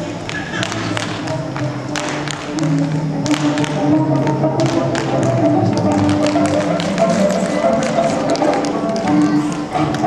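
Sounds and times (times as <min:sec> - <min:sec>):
backing music: 0:00.0 - 0:10.0
tap shoes on wooden floor: 0:00.3 - 0:10.0.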